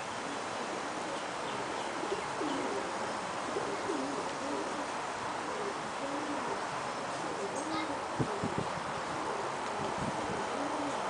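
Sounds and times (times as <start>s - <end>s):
background hiss: 0.0s - 11.0s
pigeons cooing: 0.0s - 11.0s.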